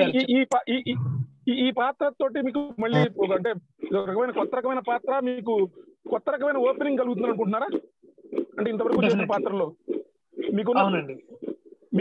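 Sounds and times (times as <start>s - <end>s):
man's voice over video call: 0.0s - 7.9s, 8.5s - 9.8s, 10.4s - 12.0s.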